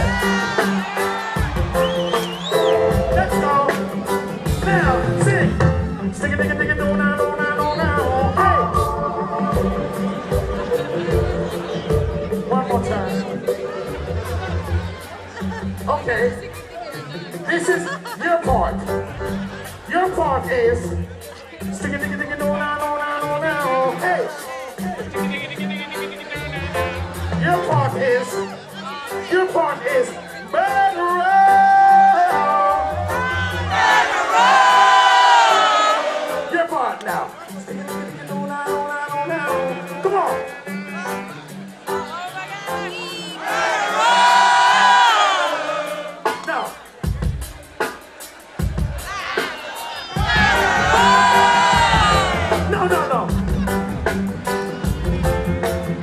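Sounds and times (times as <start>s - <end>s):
live reggae band: 0.0s - 56.0s
person singing: 3.2s - 13.6s, 30.0s - 33.4s
audience singing together: 33.2s - 36.4s, 43.4s - 46.4s.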